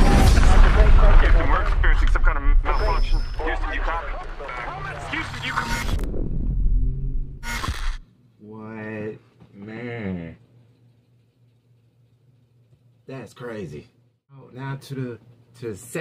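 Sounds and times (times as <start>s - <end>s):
deep rumbling film score: 0.0s - 7.9s
voices: 0.5s - 5.8s.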